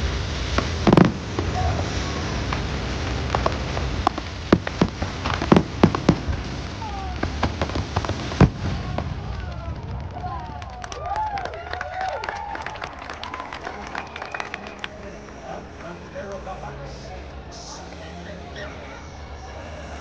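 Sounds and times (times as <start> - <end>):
fireworks crackling and banging: 0.0 - 18.1
faint crowd voices: 0.0 - 20.0.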